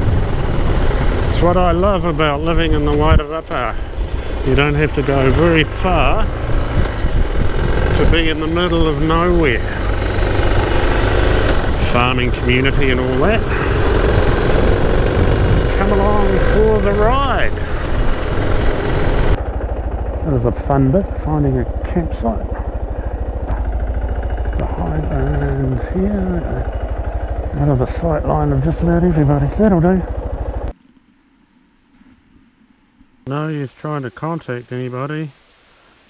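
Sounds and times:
motorcycle engine running: 0.0 - 30.8
wind and road noise: 0.0 - 36.0
man talking: 1.3 - 6.4, 7.8 - 10.0, 11.7 - 13.9, 15.6 - 17.8, 20.2 - 22.7, 24.6 - 26.7, 27.5 - 30.1, 33.3 - 35.4.

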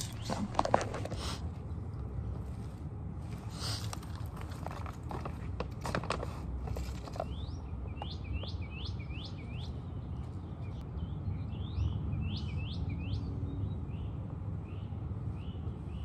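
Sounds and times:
low outdoor rumble: 0.0 - 16.0
songbird calling: 7.2 - 16.0.

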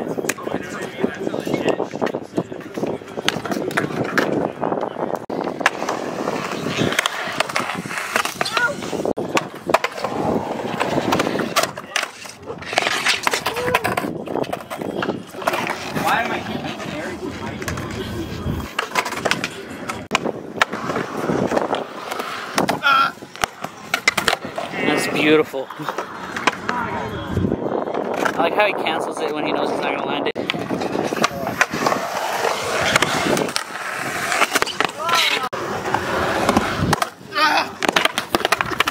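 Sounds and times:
skateboard wheels rolling on concrete: 0.0 - 38.9
skateboards clacking on ground: 0.0 - 38.9.

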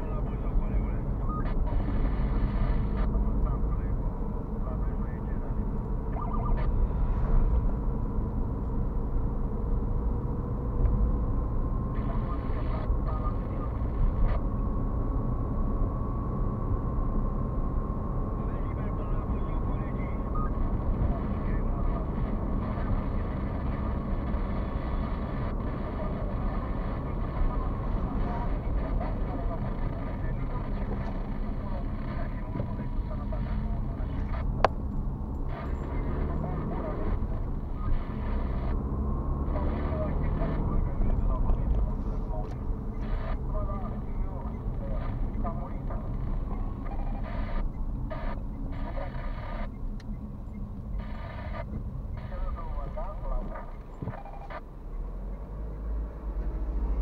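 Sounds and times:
car cabin road rumble: 0.0 - 57.0
faint steady whine: 0.0 - 57.0.

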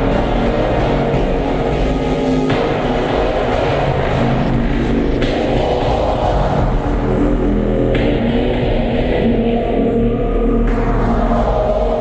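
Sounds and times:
harsh distorted noise music: 0.0 - 12.0.

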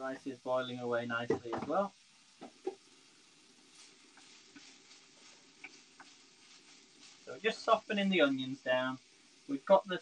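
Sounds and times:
onions sizzling in a frying pan: 0.0 - 10.0.

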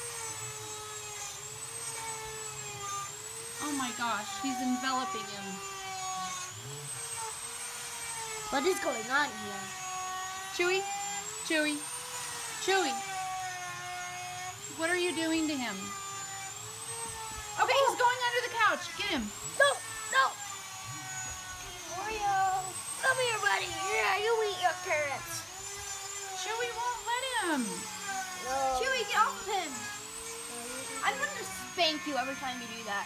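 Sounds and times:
motor humming: 0.0 - 33.0.

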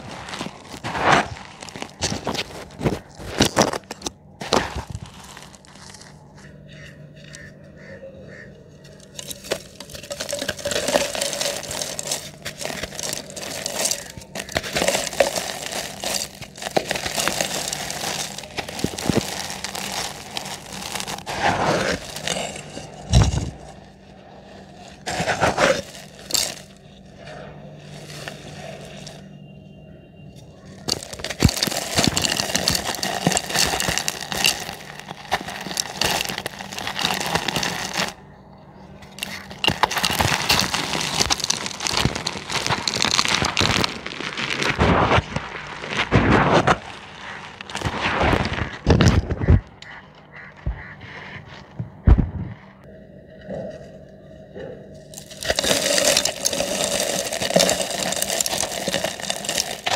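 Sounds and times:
cement chunks crumbling: 0.0 - 6.4, 8.8 - 29.3, 30.4 - 38.2, 39.0 - 49.9, 54.8 - 59.9.

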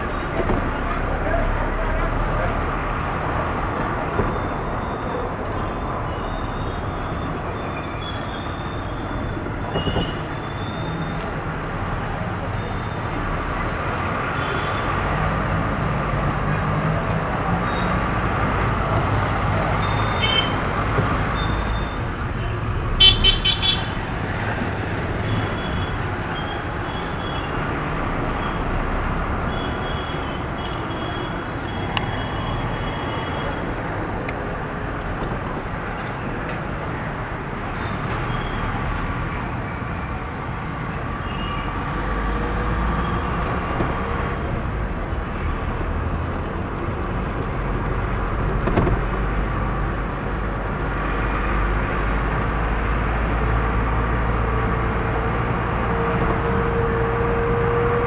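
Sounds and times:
vehicle engine and road noise: 0.0 - 58.0
car horns: 19.8 - 20.6, 21.4 - 24.0.

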